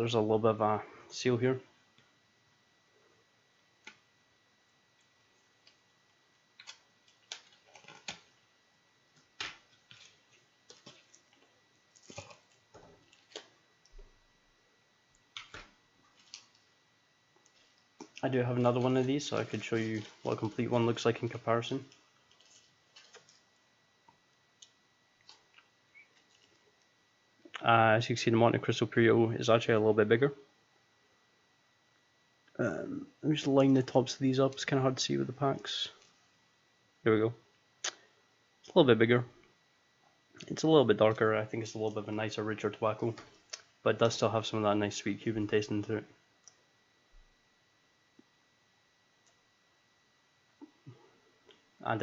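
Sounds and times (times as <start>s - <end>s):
clicks and crinkles of packaging: 6.6s - 8.4s, 9.2s - 14.0s, 15.3s - 16.7s, 18.8s - 23.5s.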